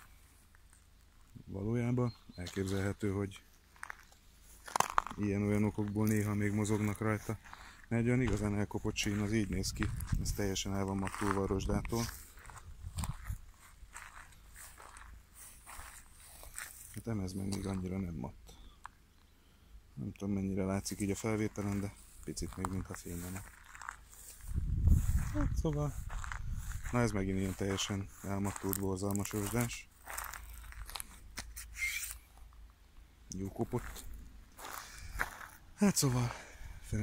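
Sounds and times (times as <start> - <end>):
footsteps crunching on gravel: 2.2 - 18.0, 20.8 - 32.6, 33.4 - 36.4
wind rumble on microphone: 9.2 - 10.6, 11.5 - 14.0, 24.4 - 27.4
footstep scuff: 12.0 - 17.7, 26.0 - 32.2.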